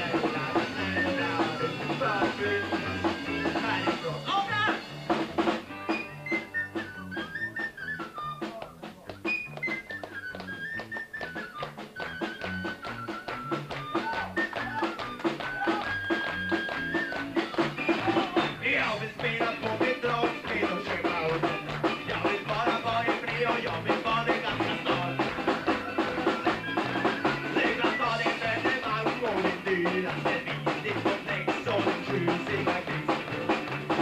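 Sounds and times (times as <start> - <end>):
live rock band playing: 0.0 - 34.0
harmonica melody: 5.6 - 18.6, 24.5 - 29.0.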